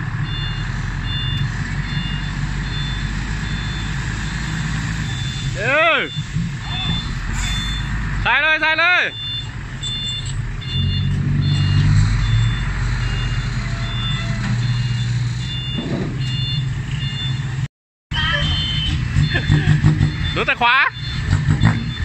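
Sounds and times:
diesel truck engine running: 0:00.0 - 0:22.0
electronic warning beeps: 0:00.2 - 0:08.0, 0:09.1 - 0:17.4, 0:18.2 - 0:22.0.

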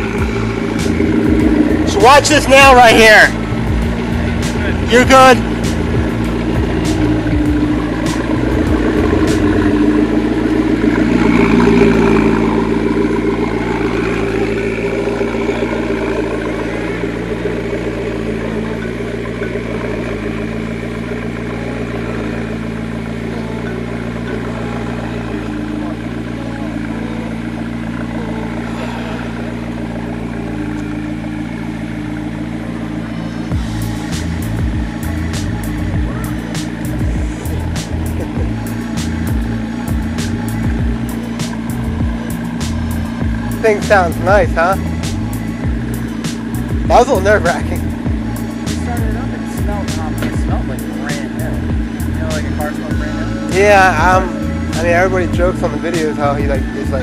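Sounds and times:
car engine at low revs: 0:00.0 - 0:57.0.

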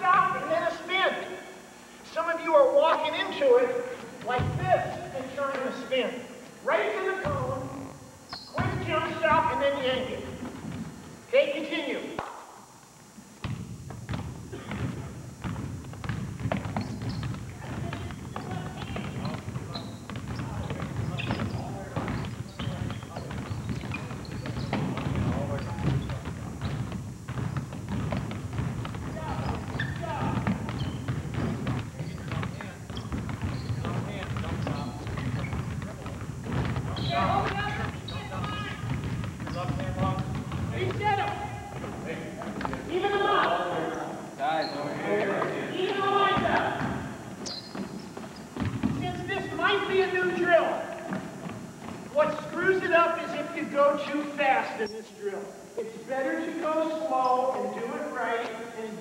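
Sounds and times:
basketballs bouncing on wooden floor: 0:04.2 - 0:05.3, 0:07.2 - 0:11.0, 0:13.4 - 0:43.5, 0:45.8 - 0:52.6
voices: 0:28.9 - 0:51.3.

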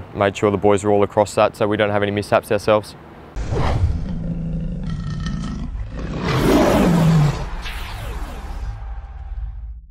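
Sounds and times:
lion roar: 0:03.4 - 0:08.4.

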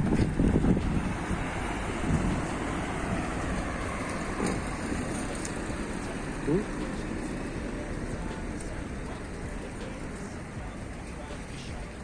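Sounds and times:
wind on microphone: 0:00.0 - 0:05.9
street traffic noise: 0:00.0 - 0:12.0.

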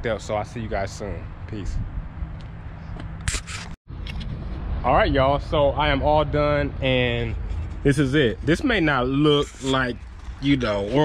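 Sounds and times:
wind rumble on microphone: 0:00.4 - 0:08.5.

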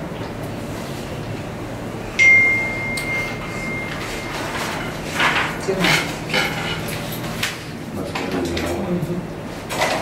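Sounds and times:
high-pitched ring: 0:02.2 - 0:05.0.

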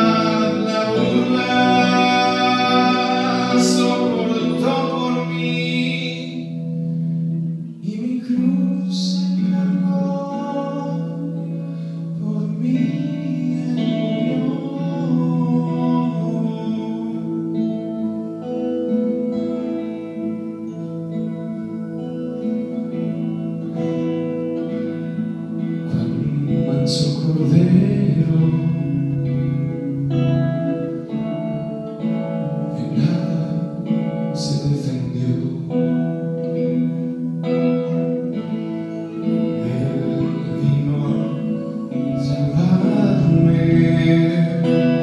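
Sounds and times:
man singing: 0:00.0 - 0:06.7, 0:07.8 - 0:18.4, 0:25.8 - 0:30.4, 0:32.6 - 0:36.6, 0:39.1 - 0:45.0
acoustic guitar: 0:00.0 - 0:45.0.

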